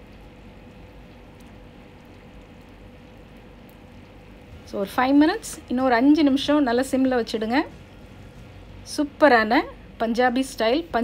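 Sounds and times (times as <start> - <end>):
curry simmering in a pan: 0.0 - 11.0
faint steady hum: 0.0 - 11.0.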